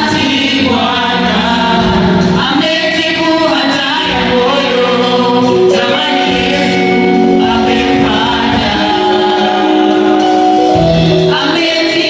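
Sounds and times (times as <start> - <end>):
choir singing gospel in harmony: 0.0 - 12.0.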